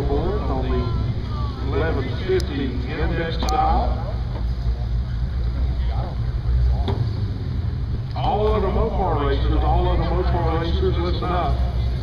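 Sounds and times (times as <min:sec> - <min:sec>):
drag car engines idling: 0:00.0 - 0:12.0.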